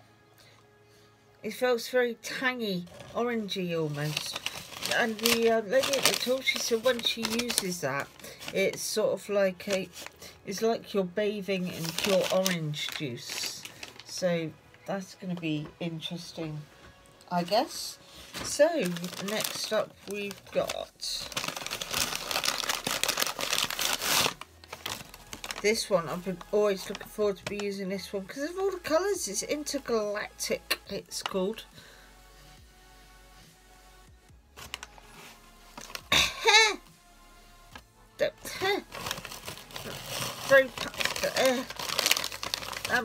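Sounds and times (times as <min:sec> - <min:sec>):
paper bag rustling: 0:02.8 - 0:09.0, 0:09.6 - 0:10.2, 0:11.6 - 0:14.2, 0:17.7 - 0:26.1, 0:34.6 - 0:36.8, 0:38.4 - 0:43.0.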